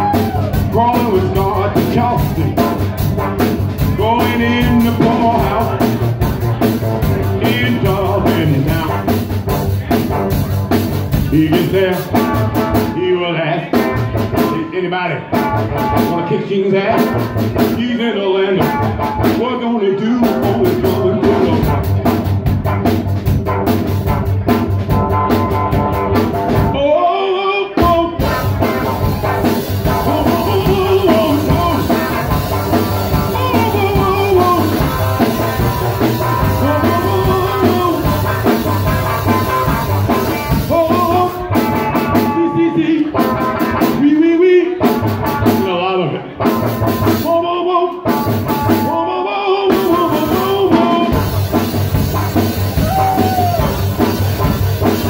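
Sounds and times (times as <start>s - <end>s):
drum kit beat: 0.0s - 13.1s, 13.7s - 14.6s, 15.2s - 19.6s, 20.2s - 27.0s, 27.7s - 49.0s, 49.6s - 55.0s
man singing: 0.0s - 22.3s, 25.9s - 51.5s
electric guitar: 0.0s - 26.8s, 27.7s - 55.0s.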